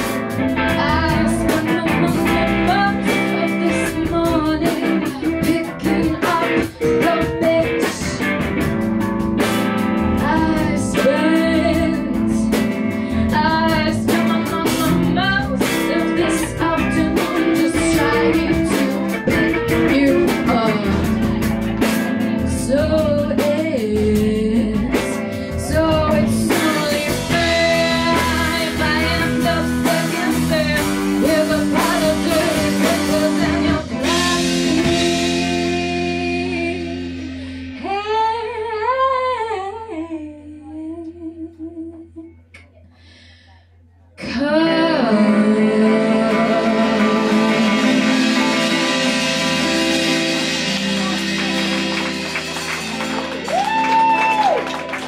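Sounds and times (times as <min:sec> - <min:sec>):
female lead vocals: 0:00.0 - 0:08.8, 0:10.0 - 0:54.6
electric guitars: 0:00.0 - 0:37.9, 0:44.4 - 0:55.0
drum kit: 0:00.0 - 0:38.5, 0:45.4 - 0:55.0
bass guitar: 0:00.0 - 0:39.4, 0:44.2 - 0:55.0.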